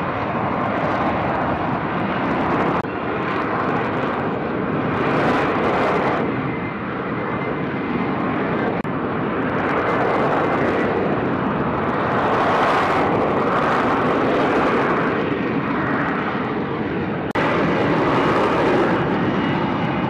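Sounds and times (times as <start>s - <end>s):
jet engine roar: 0.0s - 20.0s.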